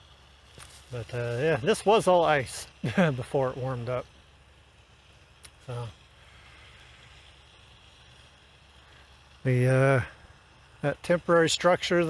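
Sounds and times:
light hiss: 0.0 - 12.0
low outdoor rumble: 0.0 - 12.0.

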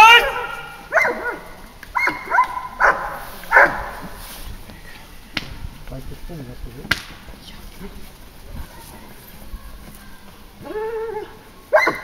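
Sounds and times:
loud short shouts: 0.0 - 0.9.

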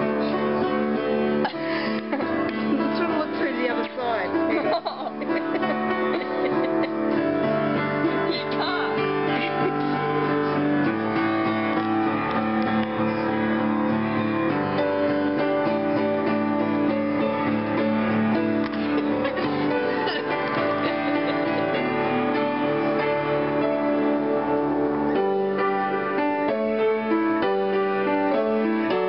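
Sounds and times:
upright piano chords: 0.0 - 29.0.

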